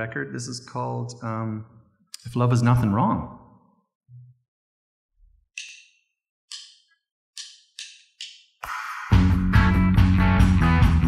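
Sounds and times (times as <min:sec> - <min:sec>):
drumsticks clicking together: 0:05.6 - 0:05.9, 0:06.5 - 0:08.5
drum kit: 0:08.6 - 0:11.0
electric guitar: 0:08.6 - 0:11.0
electric bass: 0:09.1 - 0:11.0.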